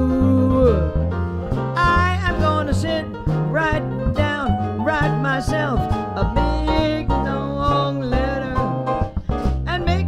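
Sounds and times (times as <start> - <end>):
drums: 0.0 - 10.0
upright bass: 0.0 - 10.0.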